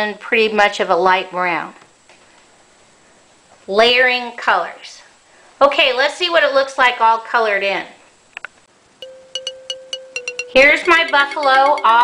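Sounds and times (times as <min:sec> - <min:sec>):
bell-like notes: 0:09.0 - 0:12.0.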